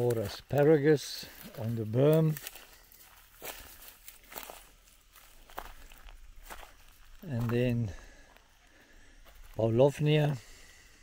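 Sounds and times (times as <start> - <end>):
man's voice: 0.0 - 2.4, 7.2 - 8.1, 9.5 - 10.5
footsteps on dry grass and twigs: 0.0 - 11.0.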